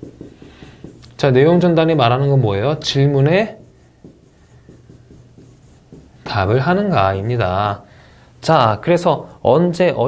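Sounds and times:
pen writing on screen: 0.0s - 7.3s.

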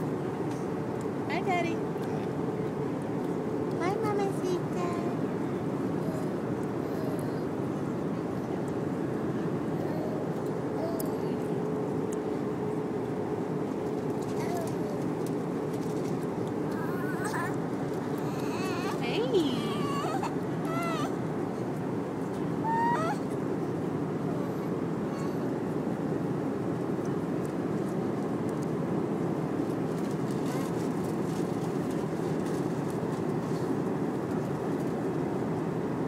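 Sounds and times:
airliner cabin noise: 0.0s - 36.0s
baby squealing and cooing: 16.7s - 19.0s, 19.6s - 21.2s, 22.6s - 23.3s.

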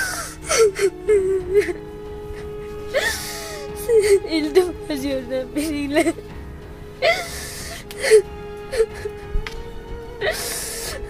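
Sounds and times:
woman sobbing: 0.0s - 1.8s, 2.4s - 6.2s, 7.0s - 9.2s, 10.2s - 11.0s
soft music with held note: 0.0s - 11.0s
sharp gasping breath: 7.1s - 7.8s.

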